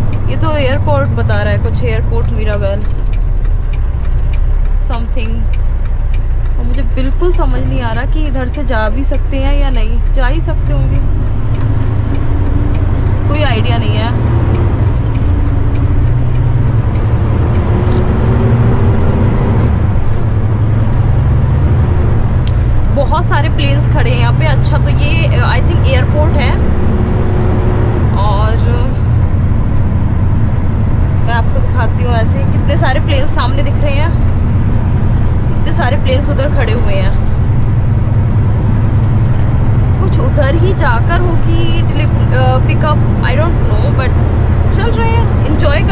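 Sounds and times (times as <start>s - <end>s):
diesel truck engine drone: 0.0s - 45.9s
road noise: 0.0s - 45.9s.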